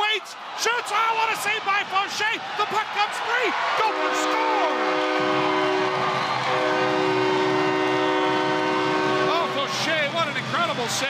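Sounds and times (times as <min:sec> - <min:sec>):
arena goal horn blast: 0:03.8 - 0:09.8.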